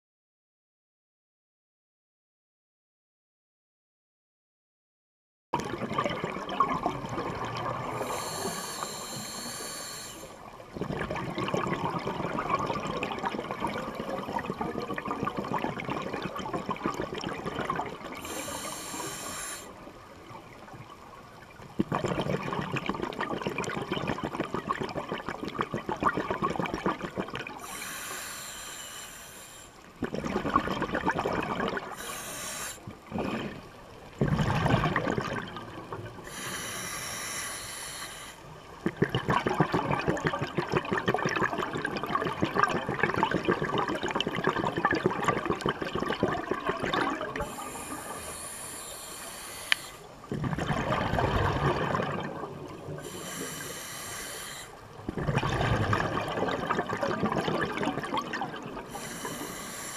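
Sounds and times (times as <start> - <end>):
exhaled bubbles gushing: 5.6 - 9.0, 10.6 - 19.5, 20.2 - 27.9, 30.0 - 32.3, 32.9 - 36.6, 38.7 - 49.0, 50.2 - 53.8, 54.8 - 59.9
hissing regulator inhalations: 7.9 - 10.5, 18.2 - 19.9, 27.6 - 29.9, 31.9 - 33.7, 36.2 - 38.6, 47.4 - 50.3, 53.0 - 55.0, 58.8 - 59.9.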